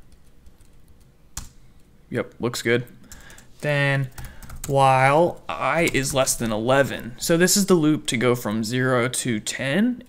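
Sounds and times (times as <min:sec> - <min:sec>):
computer keyboard typing: 0:00.0 - 0:01.6, 0:03.1 - 0:06.6.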